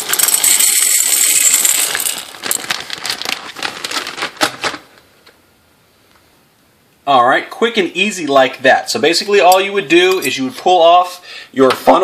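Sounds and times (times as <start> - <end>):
dry beans pouring into a jar: 0.0 - 3.3.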